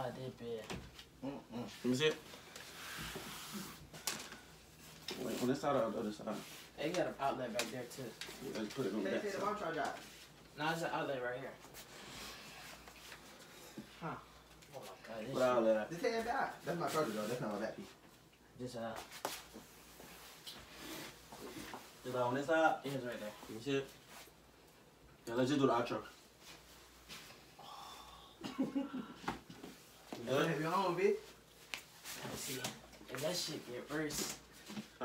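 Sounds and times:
plastic fan rustling and scraping: 1.9s - 10.4s.

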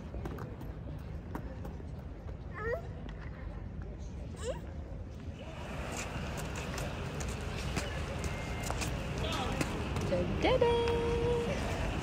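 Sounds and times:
footsteps on stone paving: 5.6s - 11.8s.

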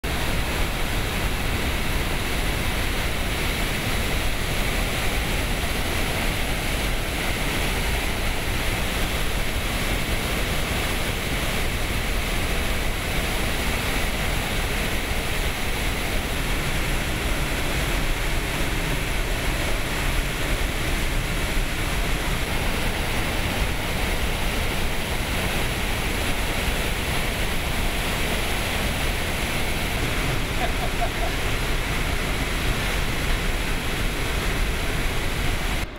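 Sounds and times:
rushing falling water: 0.0s - 35.9s.

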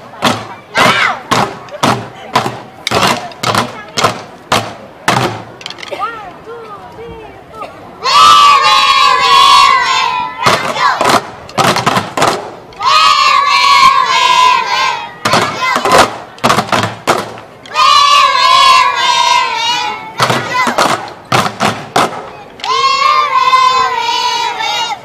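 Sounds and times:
drumstick strikes: 0.2s - 6.0s, 10.5s - 12.6s, 20.2s - 22.3s
children shouting in unison: 0.7s - 1.3s, 8.0s - 11.0s, 12.8s - 15.9s, 17.7s - 20.8s, 22.3s - 25.0s.

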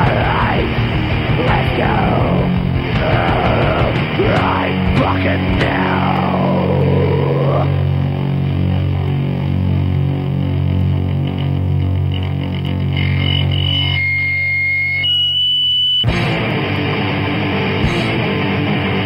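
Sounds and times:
metal band playing: 0.0s - 13.2s, 16.1s - 19.0s
distorted electric guitar chord: 0.0s - 14.9s, 16.1s - 19.0s
high held guitar tones: 0.0s - 19.0s.

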